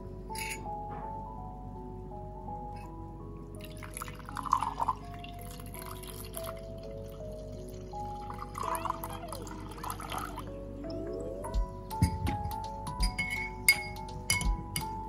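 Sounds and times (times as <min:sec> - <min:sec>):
light background music: 0:00.0 - 0:15.0
liquid pouring into glass: 0:03.6 - 0:10.4.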